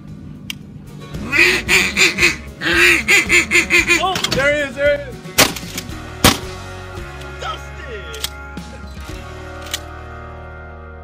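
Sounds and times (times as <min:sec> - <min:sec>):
duck call quacks: 0:01.2 - 0:04.2.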